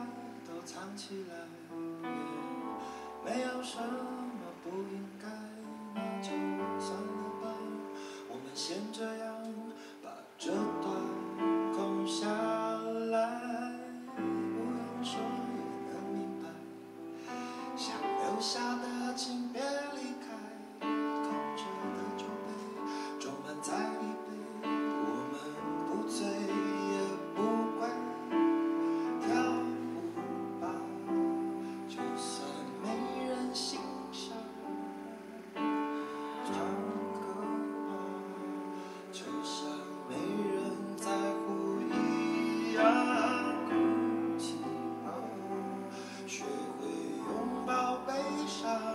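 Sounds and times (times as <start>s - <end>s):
man singing: 0.0s - 48.9s.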